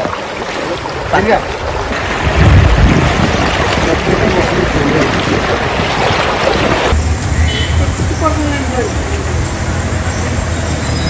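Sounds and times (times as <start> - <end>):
dense rushing noise: 6.9 - 11.0
distant voices calling: 7.0 - 11.0
people's voices: 7.0 - 11.0.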